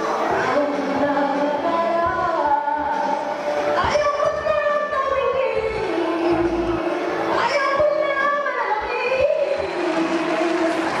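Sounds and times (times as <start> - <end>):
backing music: 0.0 - 11.0
woman singing into microphone: 0.0 - 11.0.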